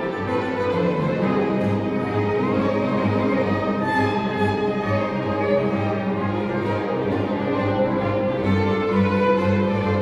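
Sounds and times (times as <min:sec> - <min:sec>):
string orchestra playing: 0:00.0 - 0:10.0.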